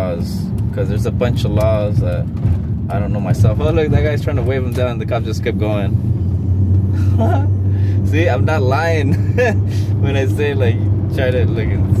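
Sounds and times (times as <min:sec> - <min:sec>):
car engine rumble: 0:00.0 - 0:12.0.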